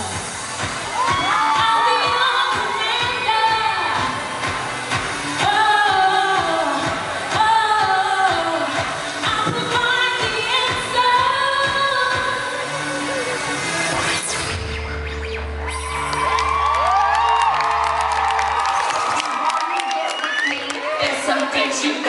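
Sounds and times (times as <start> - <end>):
pop backing music: 0.0 - 22.0
woman singing into microphone: 1.1 - 4.4, 5.4 - 12.7.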